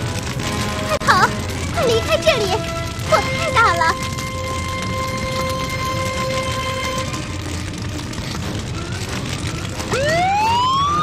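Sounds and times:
fire roaring and crackling: 0:00.0 - 0:11.0.

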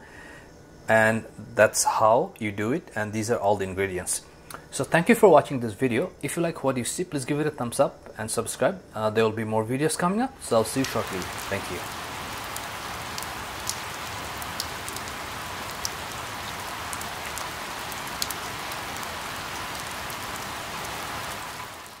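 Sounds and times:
steady rain falling: 0:10.4 - 0:22.0
ticks of single raindrops: 0:10.6 - 0:22.0.

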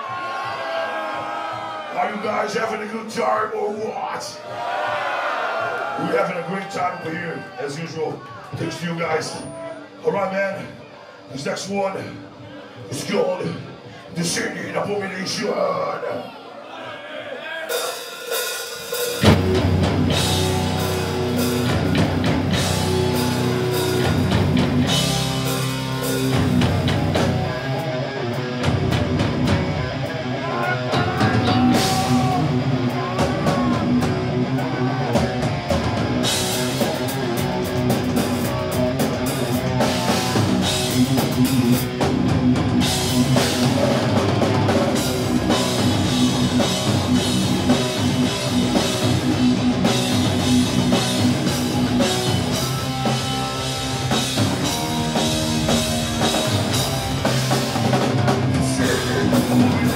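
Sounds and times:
death metal band playing live: 0:17.7 - 0:59.9.

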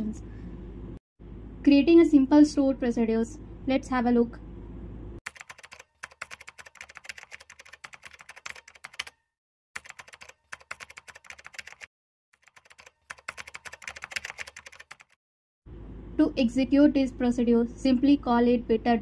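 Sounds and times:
keyboard typing: 0:05.3 - 0:09.2, 0:09.8 - 0:15.2.

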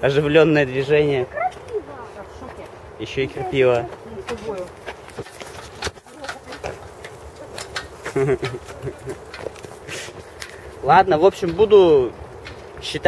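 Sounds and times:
people's voices: 0:05.8 - 0:12.2.

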